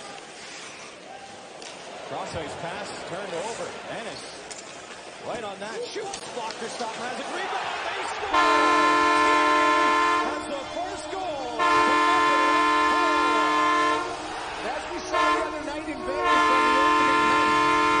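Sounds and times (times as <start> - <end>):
deep air horn blasts: 8.3 - 18.0.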